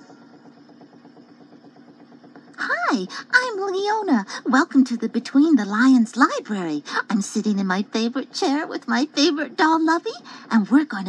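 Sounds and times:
cassette motor hum with flutter: 0.0s - 11.0s
tape hiss: 0.0s - 11.0s.

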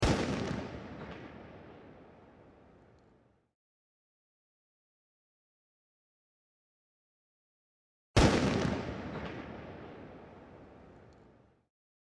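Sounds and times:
loud gunshot with echo: 0.0s - 1.3s.

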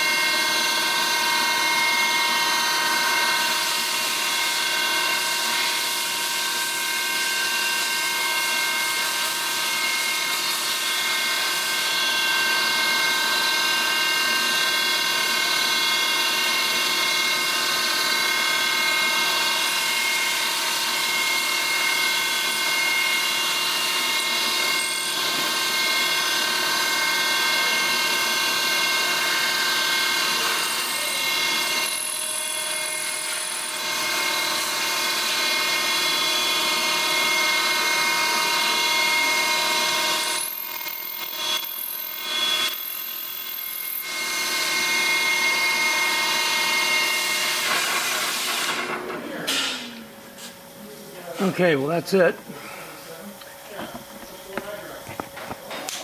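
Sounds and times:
milling spindle whine: 0.0s - 47.6s.

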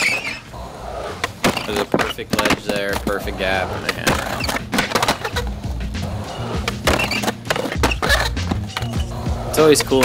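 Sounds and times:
skateboard wheels rolling on concrete: 0.0s - 10.0s
skateboard clacks: 1.2s - 10.0s
music with steady beat: 5.4s - 9.5s.

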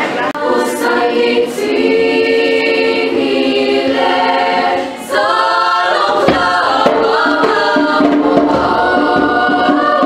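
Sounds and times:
youth choir singing a cappella: 0.0s - 10.0s.

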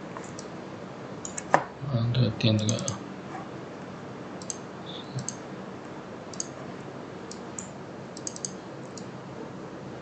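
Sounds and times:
mouse and keyboard clicks: 7.3s - 9.1s.

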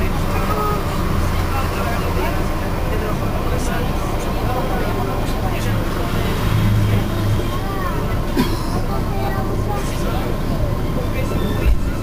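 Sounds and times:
indistinct voices: 0.0s - 12.0s
train rumbling along track: 0.0s - 12.0s.

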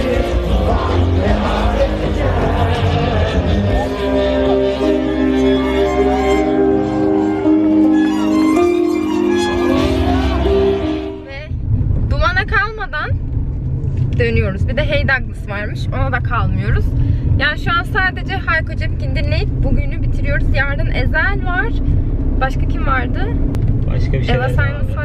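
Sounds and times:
car engine and road rumble: 0.0s - 25.0s
woman talking: 11.2s - 13.2s, 14.2s - 21.8s, 22.4s - 23.4s, 24.3s - 25.0s.

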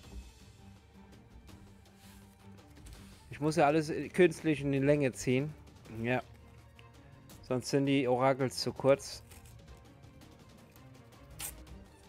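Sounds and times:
quiet background music: 0.0s - 12.0s
sticker packet tearing open: 11.3s - 11.6s.

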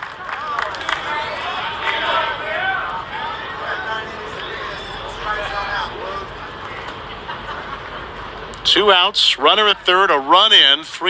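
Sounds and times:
spectators talking: 0.0s - 11.0s
steady background hum: 0.0s - 11.0s.

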